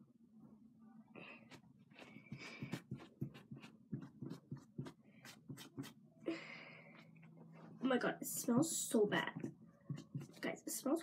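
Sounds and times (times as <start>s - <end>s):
cotton pad rubbing fingernails: 2.0s - 6.0s.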